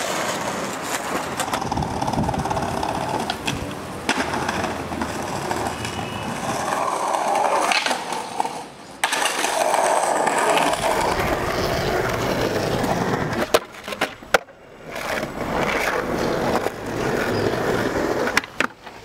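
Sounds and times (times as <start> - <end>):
skateboard clacking: 0.0 - 19.0
skateboard wheels rolling on concrete: 0.0 - 19.0.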